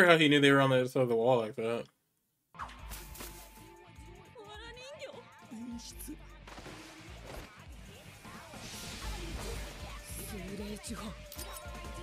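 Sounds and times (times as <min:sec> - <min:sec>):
background music: 0:02.6 - 0:12.0.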